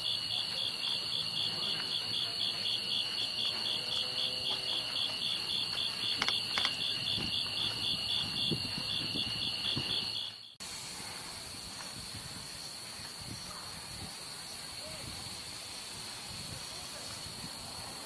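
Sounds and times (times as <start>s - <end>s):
pulsing insect call: 0.0s - 11.6s
insects high trill: 0.0s - 18.0s.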